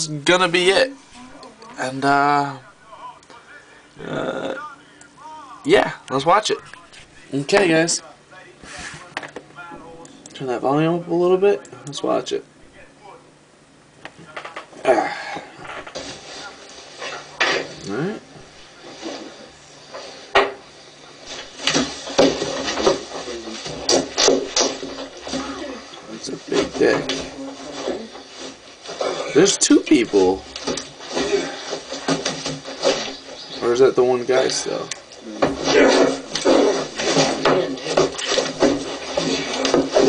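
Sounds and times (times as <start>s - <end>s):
indistinct voices through speakers: 0.0s - 40.0s.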